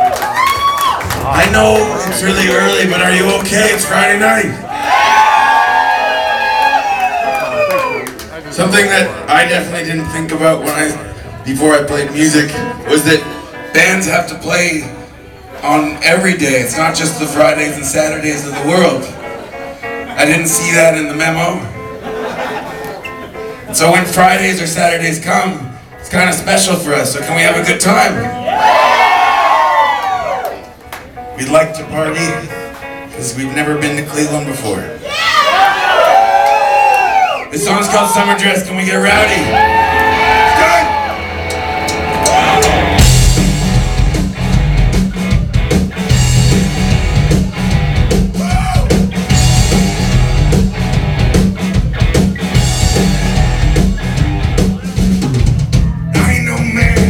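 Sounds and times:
live rock band playing: 0.0 - 6.6, 8.0 - 29.6, 30.6 - 35.1, 37.4 - 57.0
audience cheering and shouting: 0.0 - 8.2, 28.3 - 30.8, 35.0 - 55.2
driving drum beat: 40.2 - 57.0.

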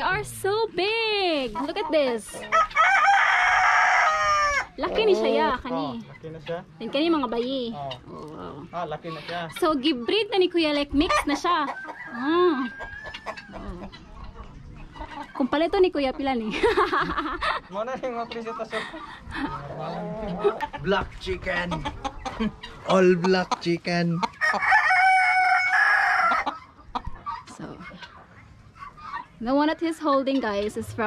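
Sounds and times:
chickens clucking: 0.0 - 31.0
rooster crowing: 2.5 - 4.9, 11.8 - 13.6, 24.4 - 26.5.

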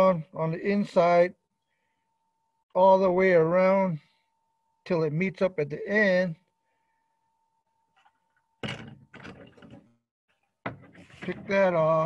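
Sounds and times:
handling knocks and rubbing: 10.7 - 11.8.

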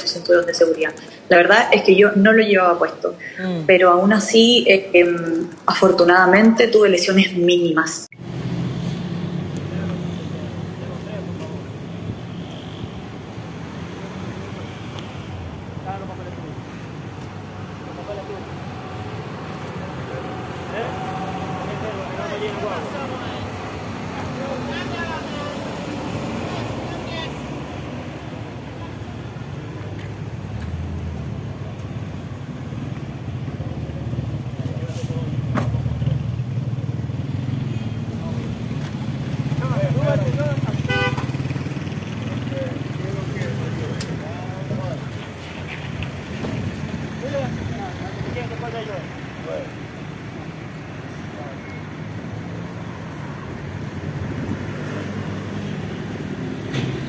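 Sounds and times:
vehicle engines in traffic: 0.0 - 7.2, 8.1 - 57.0
indistinct voices: 15.8 - 29.3.

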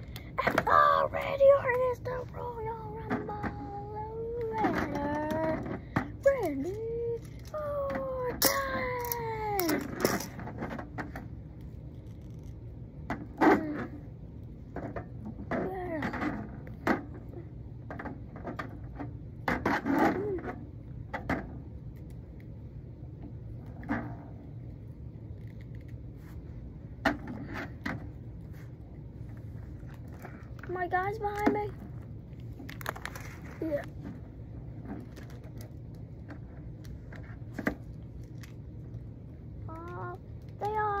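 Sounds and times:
plastic toy figures clattering: 0.4 - 11.2, 32.6 - 39.0
child murmuring: 33.6 - 33.9.

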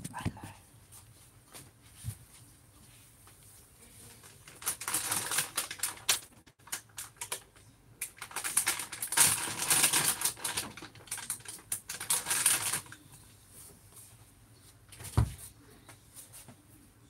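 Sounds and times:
packaging rustling and clicking: 4.4 - 13.0.

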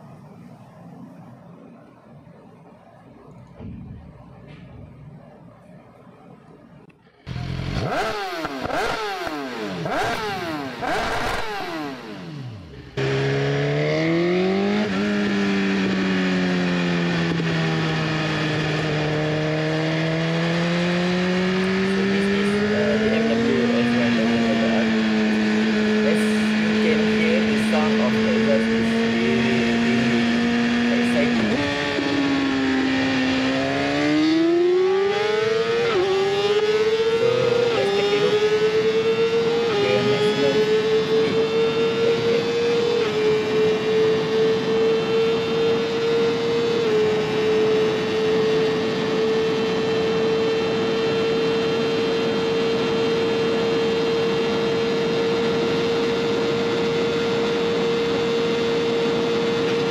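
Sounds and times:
motorcycle accelerating: 6.5 - 59.9
motorcycle engine revving: 7.2 - 59.9.

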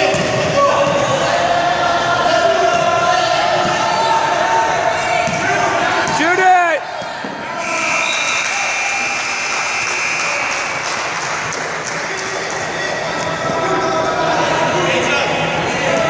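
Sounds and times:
crowd noise: 0.0 - 16.0
players' voices: 0.0 - 16.0
loud shout: 0.6 - 10.9.

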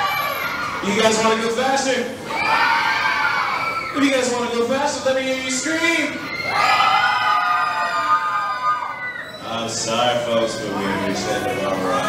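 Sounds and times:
crowd screaming: 0.0 - 12.0.

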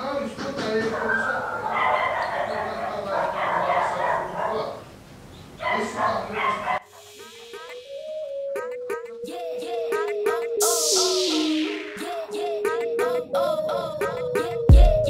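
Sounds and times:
animal whining and yipping: 0.9 - 4.2
electronic music: 6.8 - 15.0.

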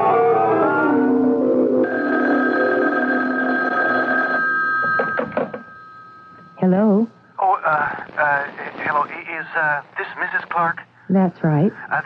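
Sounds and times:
telephone bell ringing: 1.8 - 6.6.

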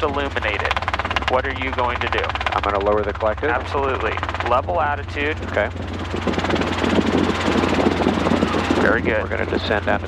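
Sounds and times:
helicopter engine and rotor: 0.0 - 10.0.

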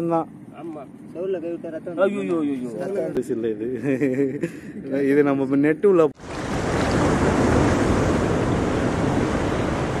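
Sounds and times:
rushing water: 6.2 - 10.0.

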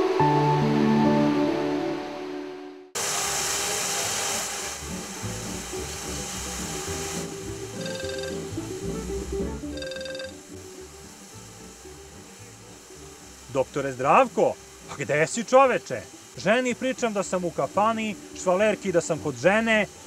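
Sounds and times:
loud steady hiss: 3.0 - 20.0
smartphone ringtone chimes: 7.7 - 8.7, 9.6 - 10.5.

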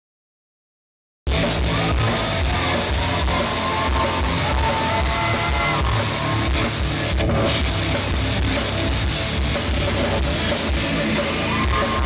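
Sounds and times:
distorted electric guitars: 1.3 - 12.0
pounding drum kit: 1.3 - 12.0.

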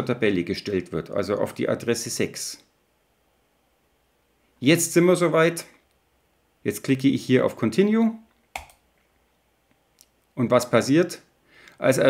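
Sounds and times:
computer mouse click: 8.5 - 8.8.

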